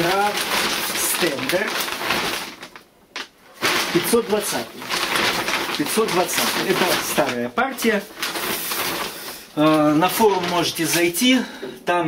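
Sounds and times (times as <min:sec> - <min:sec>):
plastic bag rustling: 0:00.0 - 0:11.7.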